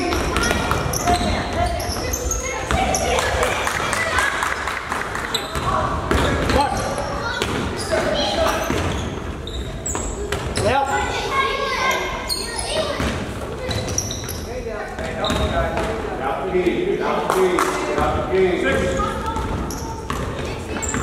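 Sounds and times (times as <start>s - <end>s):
basketball bouncing: 0.0s - 3.9s, 5.5s - 6.7s, 15.0s - 16.0s, 18.0s - 21.0s
indistinct shouts and chatter: 0.0s - 14.8s
sneakers squeaking: 0.0s - 16.0s, 17.9s - 21.0s.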